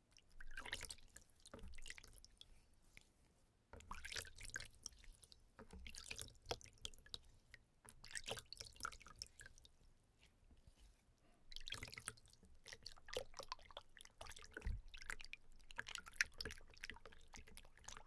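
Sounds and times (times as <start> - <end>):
water splashing and dripping: 0.1 - 2.4, 3.8 - 7.2, 11.5 - 18.0
wet hands rubbing in water: 0.1 - 15.0.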